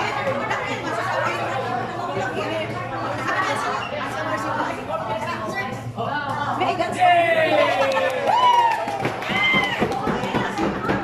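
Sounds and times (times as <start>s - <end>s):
people talking at once: 0.0s - 8.7s.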